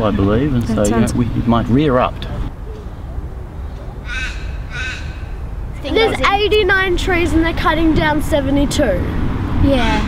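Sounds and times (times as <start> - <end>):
crow cawing: 4.0 - 5.5.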